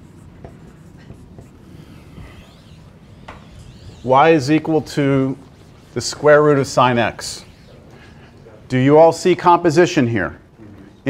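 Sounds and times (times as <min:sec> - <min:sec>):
pen scratching on whiteboard: 0:00.0 - 0:08.4
pen tapping whiteboard: 0:00.4 - 0:02.6, 0:03.2 - 0:03.6.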